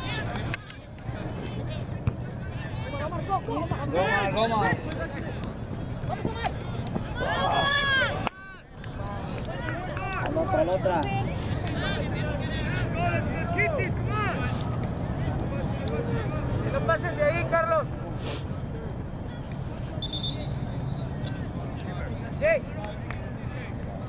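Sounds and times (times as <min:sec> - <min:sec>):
distant shouting voices: 0:00.0 - 0:24.0.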